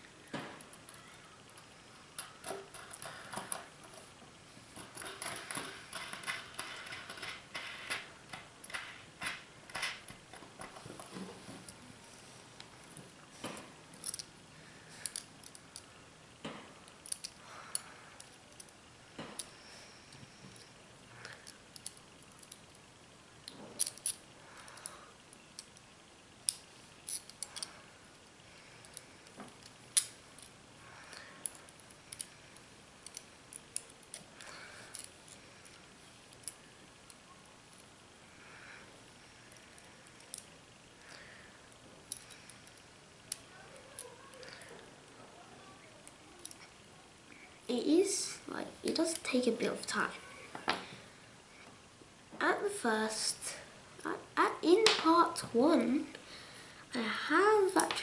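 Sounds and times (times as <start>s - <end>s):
small metal parts clinking: 14.0s - 14.3s, 23.8s - 24.9s, 26.5s - 27.8s.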